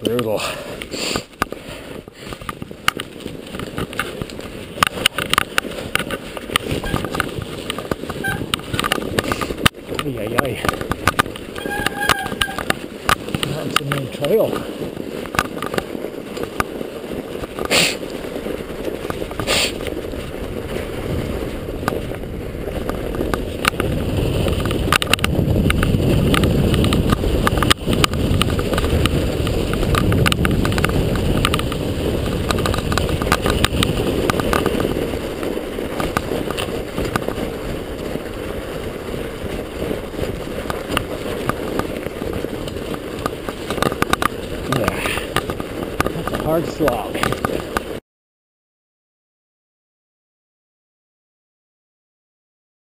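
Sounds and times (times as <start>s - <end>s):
bike knocking on bumps: 0.0s - 48.0s
bike tyres rumbling on snow: 0.0s - 48.0s.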